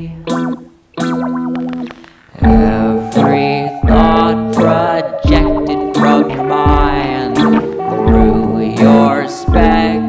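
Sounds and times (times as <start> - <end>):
guitar chords: 0.0 - 10.0.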